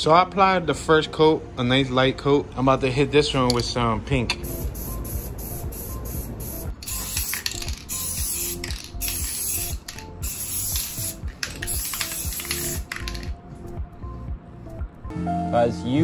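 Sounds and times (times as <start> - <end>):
background music: 0.0 - 16.0
spray paint can hissing: 4.4 - 13.4.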